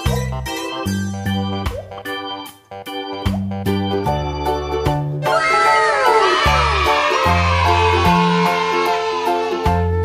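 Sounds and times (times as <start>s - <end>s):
background music with bass line: 0.0s - 5.3s
children cheering: 5.2s - 10.0s.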